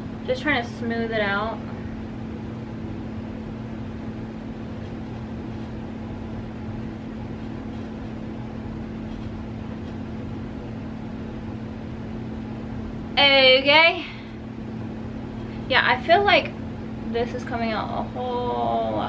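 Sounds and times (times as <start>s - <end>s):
low hum: 0.0s - 19.0s.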